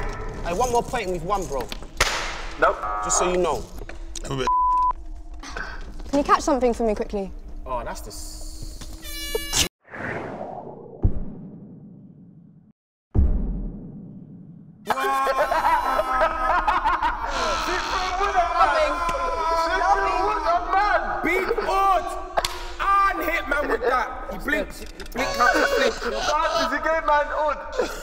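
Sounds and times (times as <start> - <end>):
censor bleep: 4.4 - 5.0
people laughing: 14.9 - 28.0.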